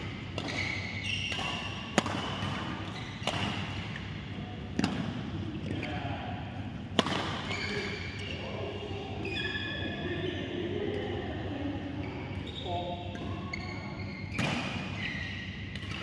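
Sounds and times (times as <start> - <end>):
racket hitting shuttlecock: 0.0 - 4.1, 4.7 - 5.3, 6.9 - 7.5, 14.3 - 14.9
sports shoes squeaking: 0.4 - 3.4, 7.4 - 8.6, 9.2 - 10.4, 12.0 - 15.7.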